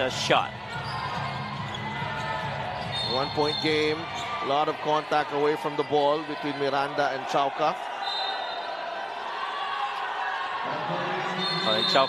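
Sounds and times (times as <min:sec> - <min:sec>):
basketball court noise: 0:00.0 - 0:12.0.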